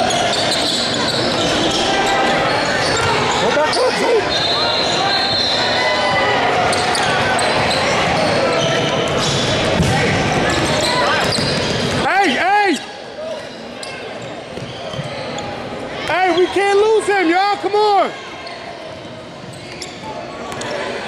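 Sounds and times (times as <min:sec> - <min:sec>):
sneakers squeaking on floor: 0:00.0 - 0:16.8, 0:18.2 - 0:20.9.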